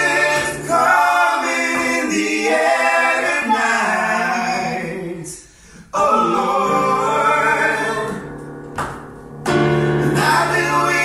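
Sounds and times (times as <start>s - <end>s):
men singing a cappella: 0.0s - 8.4s, 10.0s - 11.0s.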